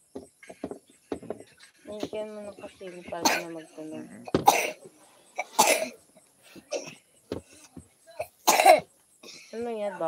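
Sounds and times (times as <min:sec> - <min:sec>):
person coughing: 0:03.2 - 0:03.6, 0:04.3 - 0:06.0, 0:06.7 - 0:07.0, 0:08.2 - 0:09.5.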